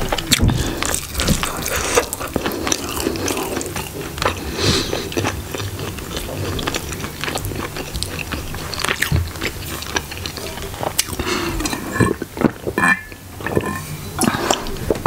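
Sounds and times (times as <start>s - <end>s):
chewing and wet mouth noises: 0.0s - 15.0s.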